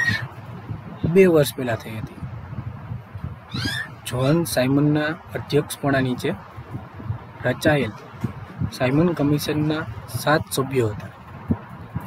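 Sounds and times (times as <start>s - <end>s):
high-pitched animal-like call: 0.0s - 0.3s, 3.5s - 4.0s.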